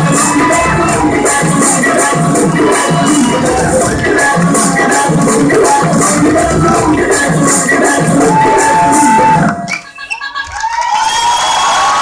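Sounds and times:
audience cheering and whooping: 0.0s - 7.2s, 7.8s - 12.0s
loud dance music: 0.0s - 12.0s.

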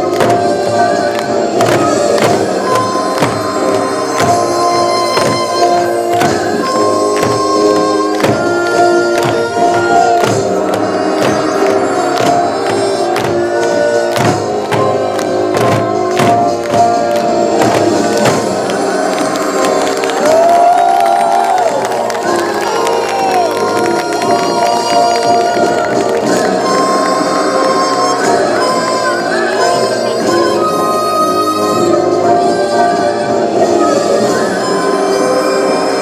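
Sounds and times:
sustained melodic instrument lines: 0.0s - 20.4s
crowd shouting and cheering: 0.0s - 36.0s
drum strikes: 1.5s - 18.8s.

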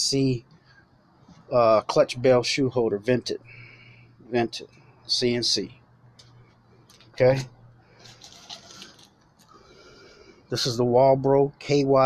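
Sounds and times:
plastic bags rustling: 8.0s - 9.5s.

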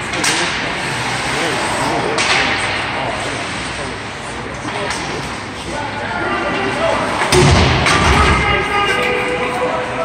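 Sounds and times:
spectators' voices: 0.0s - 10.0s
bang on rink boards: 7.2s - 8.6s.

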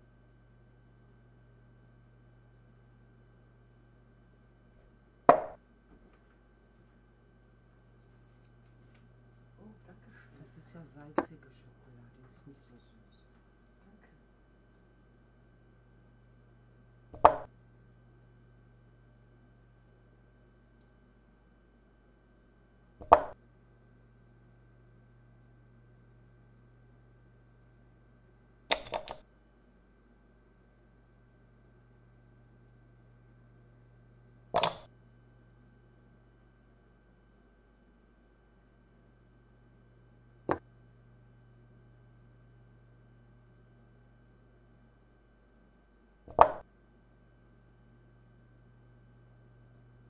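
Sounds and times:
faint steady hum: 0.0s - 50.0s
chess piece click: 28.7s - 29.2s, 34.6s - 34.9s, 46.3s - 46.6s.

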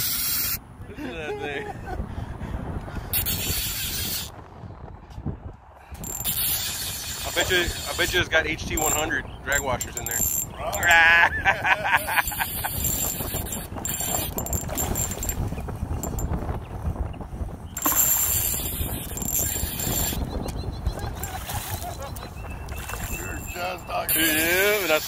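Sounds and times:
wind rumbling on microphone: 0.1s - 25.0s.

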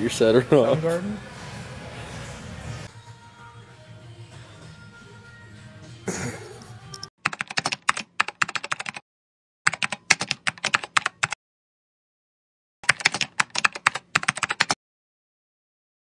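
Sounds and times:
rapid keyboard typing clicks: 7.2s - 9.0s, 9.7s - 11.4s, 12.8s - 14.8s.

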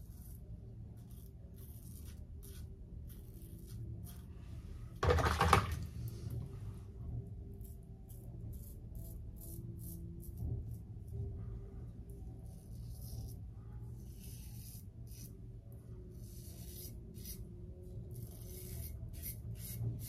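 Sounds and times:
razor scraping stubble: 0.0s - 4.3s, 7.6s - 10.8s, 12.4s - 15.4s, 16.2s - 20.0s.

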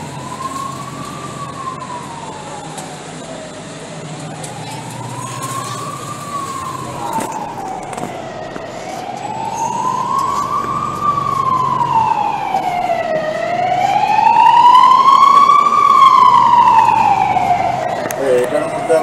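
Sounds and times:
city traffic: 0.0s - 19.0s
emergency vehicle siren wailing: 0.0s - 19.0s.

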